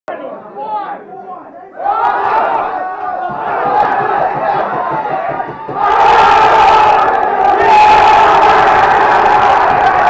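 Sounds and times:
people shouting: 1.8s - 10.0s.

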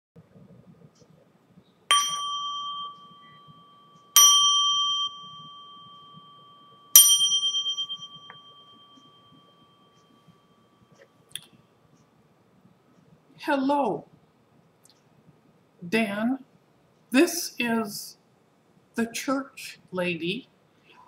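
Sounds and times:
small bell ringing: 1.9s - 10.8s.

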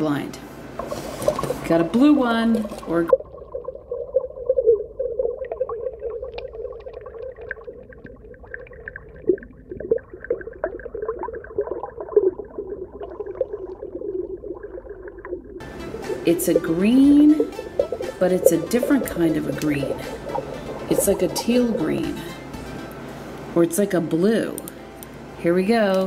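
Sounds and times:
muffled underwater drone: 0.7s - 24.6s
underwater clicks and crackles: 0.8s - 15.6s, 16.4s - 22.2s.

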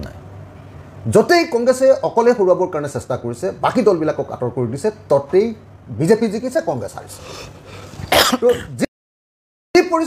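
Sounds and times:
man clearing his throat: 8.0s - 8.9s.

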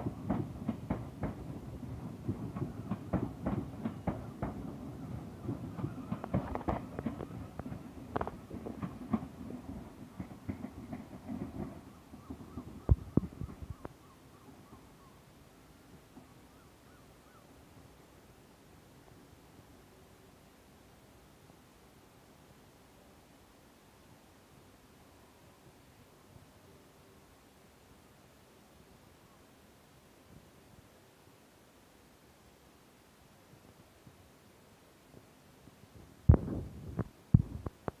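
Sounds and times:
train wheels clunking over rail joints: 0.0s - 13.9s.

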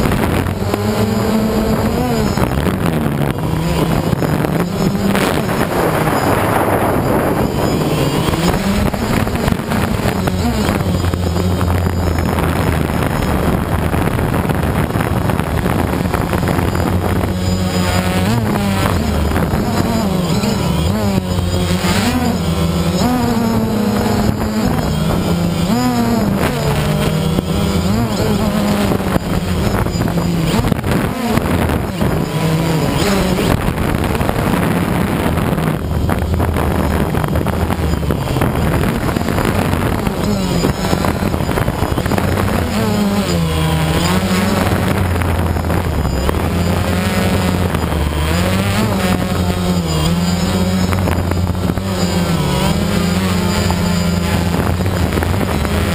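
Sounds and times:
drone motors and propellers humming: 0.0s - 55.9s.

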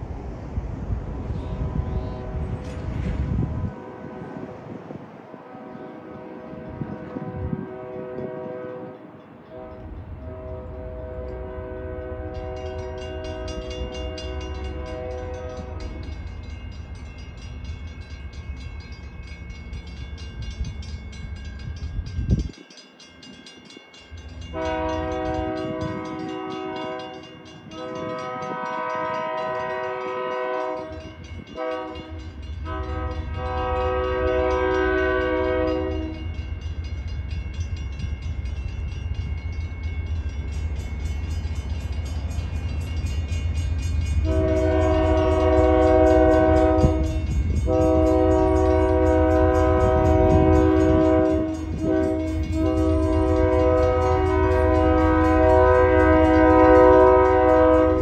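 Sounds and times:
train rumble: 0.0s - 58.0s
locomotive air horn blasts: 1.5s - 2.6s, 3.3s - 4.5s, 5.4s - 16.0s, 24.5s - 36.4s, 44.2s - 58.0s.

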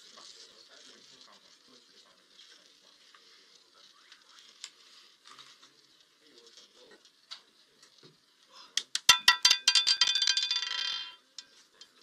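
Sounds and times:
roulette ball rattling: 8.8s - 11.6s.

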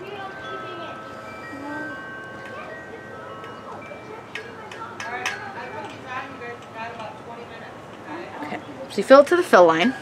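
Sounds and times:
background voices talking: 0.0s - 10.0s.

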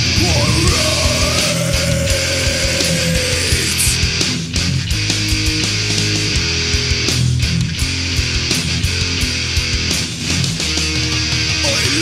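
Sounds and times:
bass guitar low notes: 0.0s - 12.0s
distorted electric guitars: 0.0s - 12.0s.

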